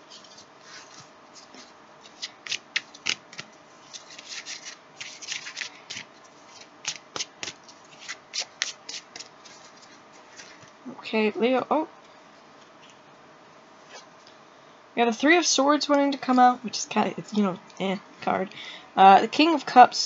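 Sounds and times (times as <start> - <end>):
cards being shuffled: 0.1 - 10.7.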